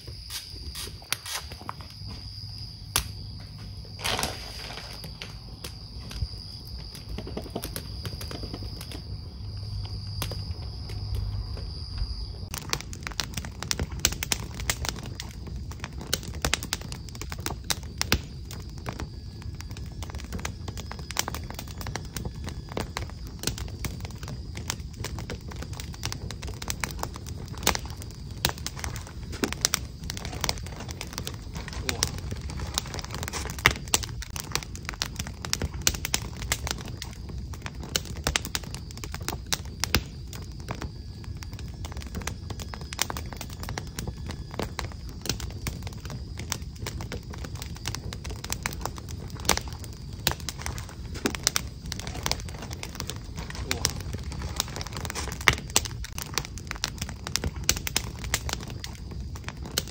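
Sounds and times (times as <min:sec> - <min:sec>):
burning logs snapping and popping: 0:00.0 - 0:59.9
low rumble of flames: 0:00.0 - 0:59.9.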